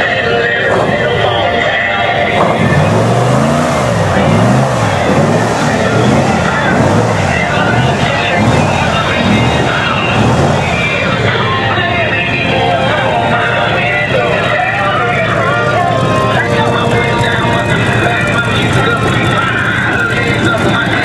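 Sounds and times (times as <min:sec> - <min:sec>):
airboat engine revving: 0:00.0 - 0:21.0.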